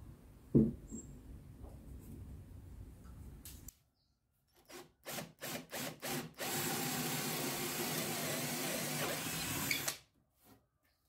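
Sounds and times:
cordless drill boring wood: 4.6 - 10.0.

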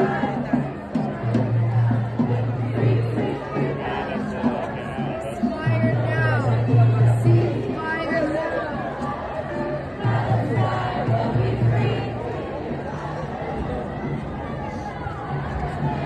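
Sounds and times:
crowd babble: 0.0 - 16.0.

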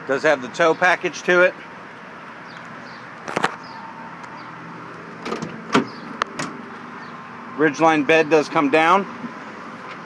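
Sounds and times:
tailgate knocks and clunks: 5.2 - 6.6
tailgate latch clicks: 5.2 - 6.6.

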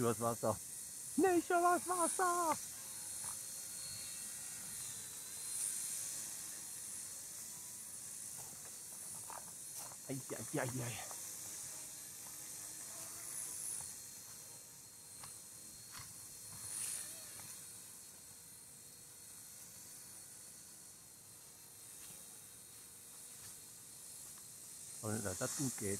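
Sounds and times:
model helicopter whine: 0.0 - 25.9.

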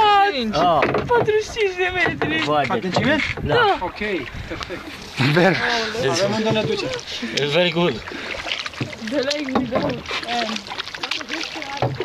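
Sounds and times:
paddles splashing water: 0.0 - 12.0
people talking: 5.2 - 8.0, 9.0 - 12.0.

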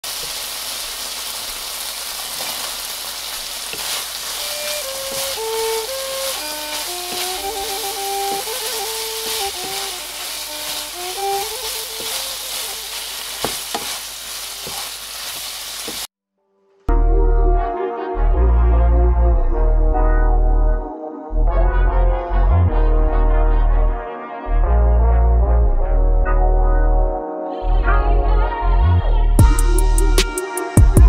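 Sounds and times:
food sizzling in a pan: 0.0 - 16.1
wooden spatula scraping and tapping: 3.7 - 16.1.

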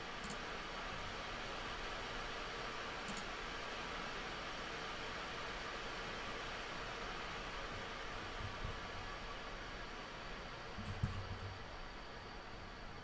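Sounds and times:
steady background hiss: 0.0 - 13.0.

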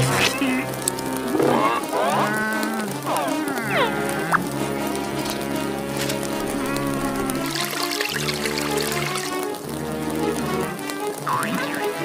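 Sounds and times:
cartoon character crying out: 1.6 - 4.4.

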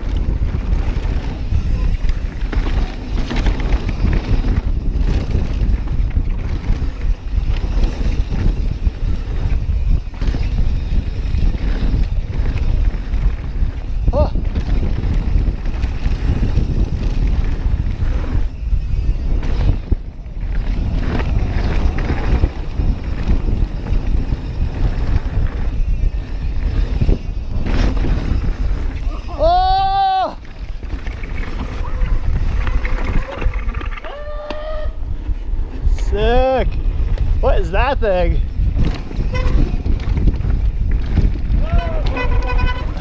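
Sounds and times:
tyres rattling over dirt trail: 0.0 - 43.0
wind buffeting microphone: 0.0 - 43.0
rider whooping: 29.0 - 30.8, 31.7 - 35.1, 41.5 - 43.0
person calling whoa: 29.2 - 30.4, 34.0 - 35.0.

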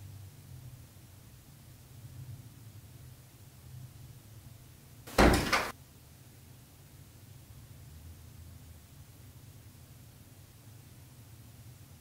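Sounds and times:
door closing with latch clatter: 5.1 - 5.7.

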